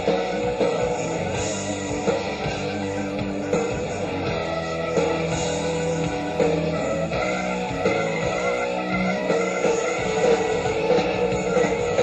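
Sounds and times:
distorted electric guitar: 0.0s - 12.0s
hard rock band playing: 0.0s - 12.0s.

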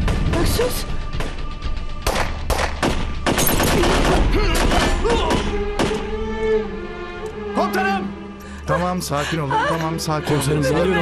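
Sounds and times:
gunfire: 2.0s - 6.0s.

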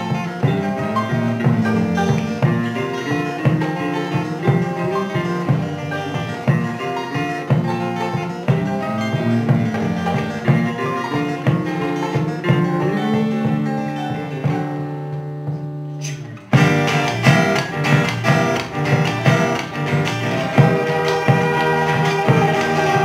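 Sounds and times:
hand drum strikes: 0.0s - 14.8s, 16.5s - 23.0s
acoustic band playing: 0.0s - 23.0s.

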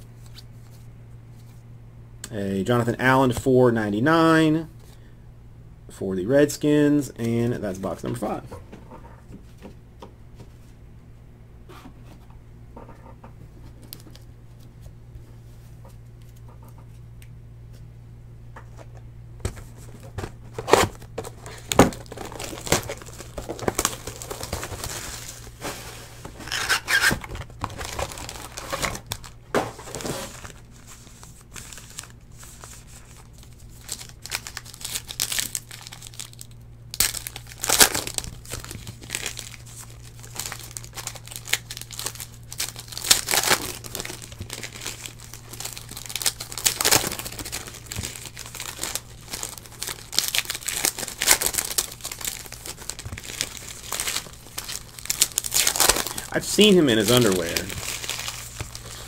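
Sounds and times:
foil packs crinkling: 19.5s - 59.0s
foil tearing rips: 20.6s - 25.6s, 26.4s - 30.6s, 33.8s - 59.0s.

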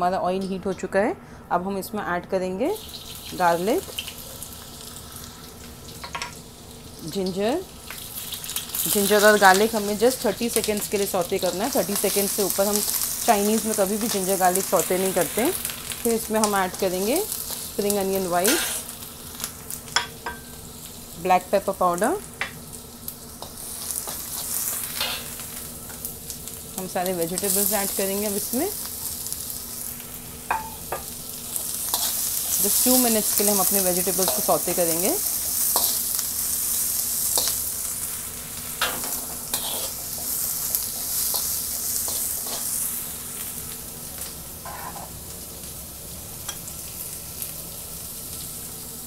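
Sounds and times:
food sizzling in hot oil: 2.6s - 49.0s
spatula scraping a wok: 18.4s - 19.5s, 23.4s - 26.0s, 30.5s - 43.2s, 44.6s - 45.2s
metal skimmer tapping wok: 30.5s - 31.1s.

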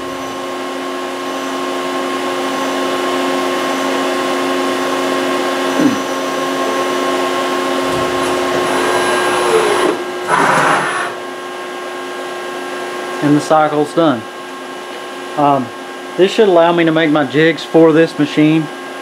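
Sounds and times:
milling machine hum: 0.0s - 13.4s
milling machine spindle rising: 5.4s - 11.4s
spindle falling whine: 5.5s - 11.5s.

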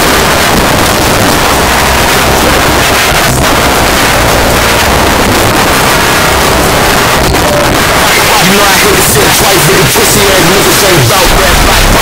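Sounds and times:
loud rushing noise: 0.0s - 12.0s.

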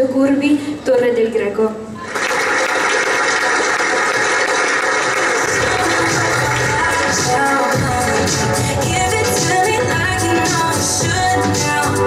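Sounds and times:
audience applauding: 2.0s - 8.8s
upbeat background music: 5.4s - 12.0s
bass line: 5.5s - 12.0s.

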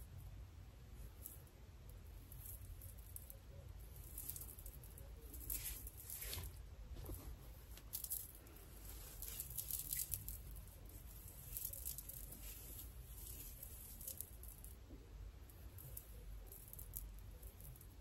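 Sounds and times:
hair crackling and rustling: 2.2s - 14.8s.

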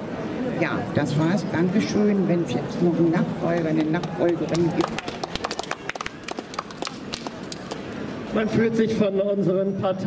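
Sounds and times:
small audience clapping: 3.7s - 7.8s.

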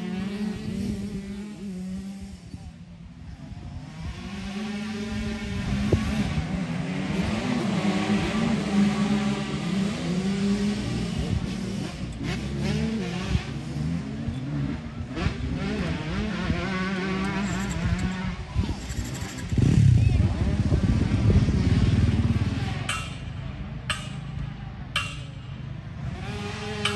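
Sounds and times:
motocross bikes revving past: 0.0s - 26.9s.

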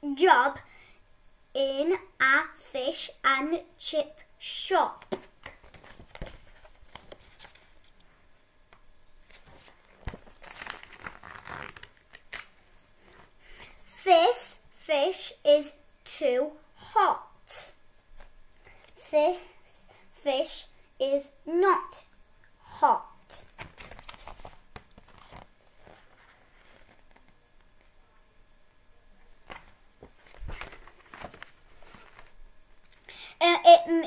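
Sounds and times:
paper pages rustling: 5.1s - 8.1s, 9.2s - 13.4s, 23.4s - 27.4s, 29.4s - 32.4s
book pages flicking: 9.3s - 12.6s, 23.4s - 26.0s, 29.4s - 32.4s.

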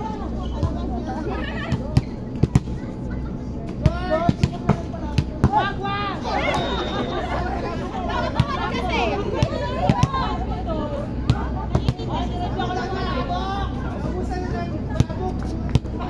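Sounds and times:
players calling and shouting: 0.0s - 16.0s.

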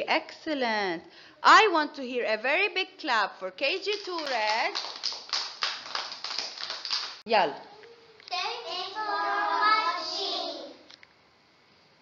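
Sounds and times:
children clapping: 3.9s - 7.2s.

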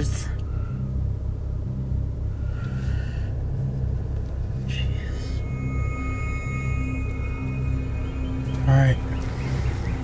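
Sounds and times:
car idling inside cabin: 0.0s - 10.0s.

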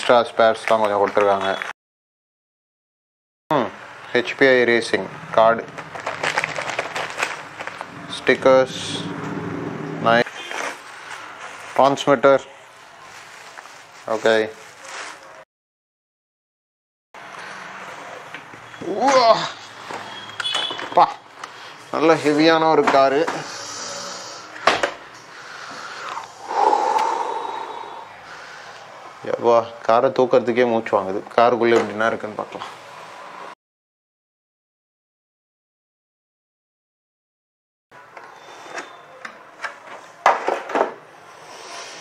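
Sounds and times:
plastic bag crinkling: 5.6s - 8.4s, 13.0s - 15.4s
cardboard box rustling: 5.9s - 7.9s
breathy exhaling: 23.3s - 24.6s, 25.3s - 29.0s, 41.3s - 42.0s.

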